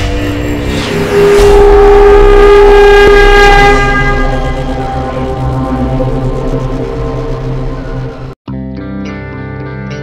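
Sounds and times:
held pitched tone: 0.0 - 8.4
low rumble: 0.0 - 8.4.

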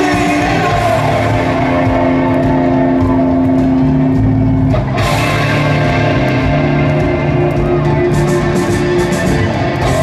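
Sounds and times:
live rock band playing: 0.0 - 10.0.

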